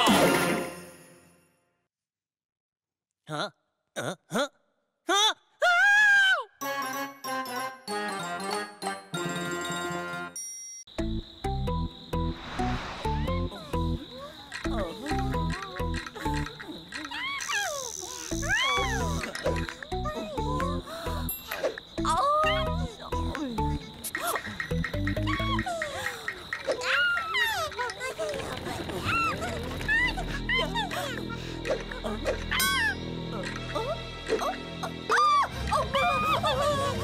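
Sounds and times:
cartoon background music: 0:06.5 - 0:10.4, 0:11.0 - 0:25.8, 0:29.1 - 0:37.0
cartoon character whimpering cries: 0:17.1 - 0:21.3.

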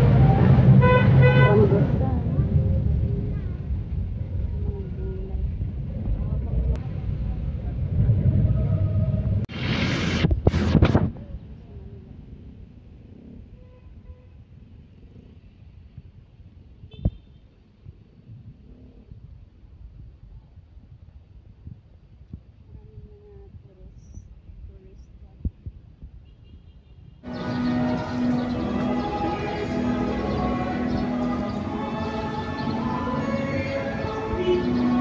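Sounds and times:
vehicle road rumble: 0:00.0 - 0:35.0
faint voices: 0:01.5 - 0:09.4
loud rushing bursts: 0:07.8 - 0:11.1.

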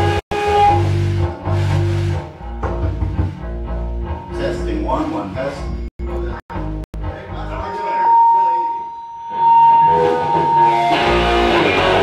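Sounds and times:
electric guitar notes: 0:00.0 - 0:12.0
electric guitar high tone ringing: 0:07.6 - 0:12.0.

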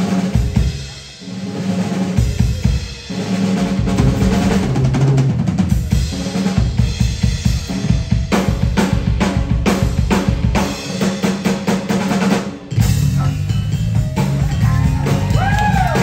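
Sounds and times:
drum kit played busily: 0:00.0 - 0:16.0
full band playing: 0:00.0 - 0:16.0.

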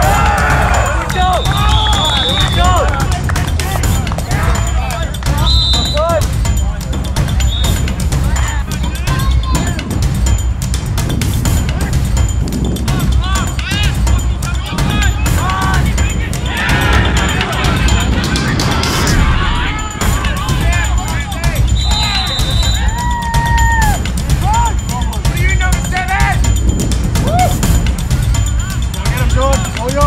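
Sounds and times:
spectators calling out and chattering: 0:00.0 - 0:30.0
low microphone rumble: 0:14.8 - 0:21.7.

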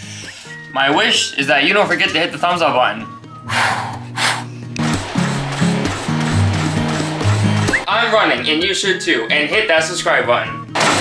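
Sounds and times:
puffs of breath: 0:00.0 - 0:00.7, 0:03.4 - 0:05.4
background music with bass line: 0:00.0 - 0:09.6.

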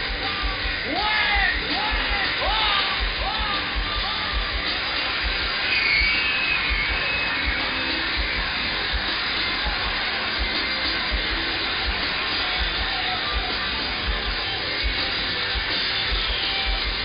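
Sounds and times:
amplified stage sound: 0:00.0 - 0:17.0
crowd noise: 0:00.0 - 0:17.0.

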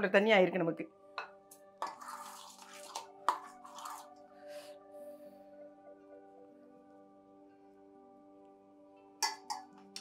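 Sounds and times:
soft background music: 0:00.0 - 0:10.0
spoon clinking and scraping steel bowl: 0:01.8 - 0:04.1, 0:09.2 - 0:10.0.

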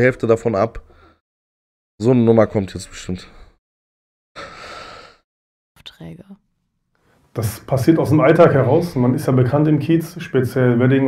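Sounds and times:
man's breathy exhale: 0:04.4 - 0:05.3.

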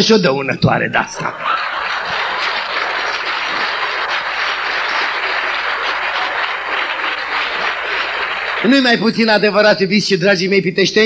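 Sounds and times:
audience applauding: 0:01.2 - 0:09.2.

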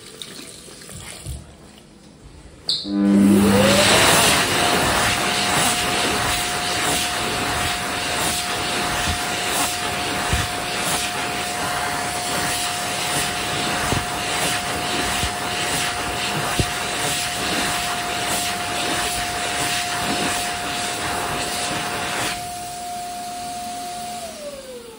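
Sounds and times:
motor whine: 0:02.7 - 0:24.9
hand dryer air rushing: 0:02.8 - 0:24.9.

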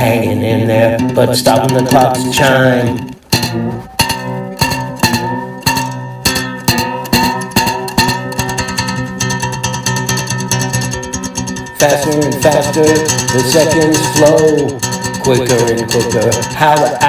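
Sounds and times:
plucked string instrument: 0:00.0 - 0:17.0.

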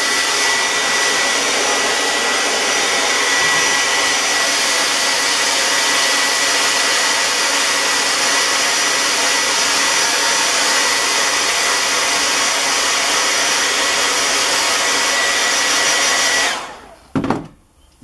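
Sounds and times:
hair dryer running: 0:00.0 - 0:17.1.

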